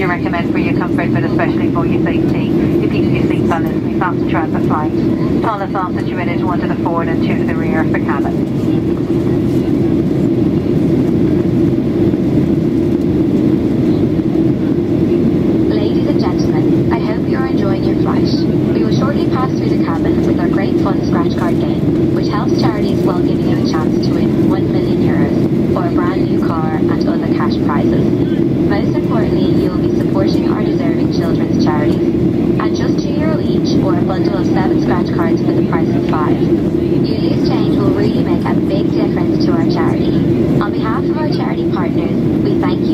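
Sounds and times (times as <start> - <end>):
air rushing along fuselage: 0.0 - 42.9
jet engines droning: 0.0 - 42.9.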